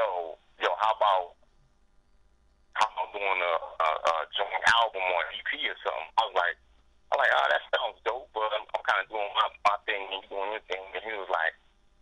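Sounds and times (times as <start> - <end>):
man talking: 0.0 - 1.3, 2.8 - 11.5.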